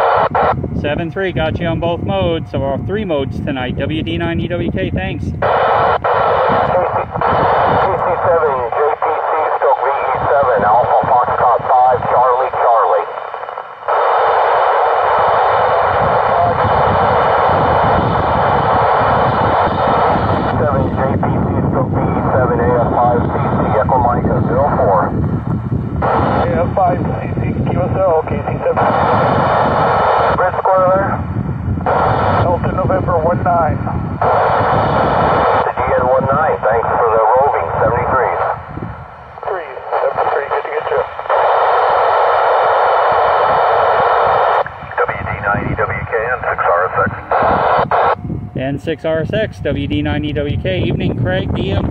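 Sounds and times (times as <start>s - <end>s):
steady radio hiss: 0.0s - 25.3s, 25.9s - 51.8s
voices over radio speaker: 0.0s - 25.3s, 26.0s - 51.9s.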